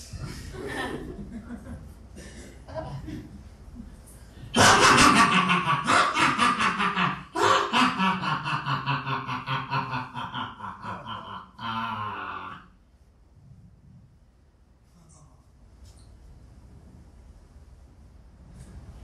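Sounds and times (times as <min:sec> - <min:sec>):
loud laughter: 0:00.2 - 0:01.8, 0:04.6 - 0:12.6.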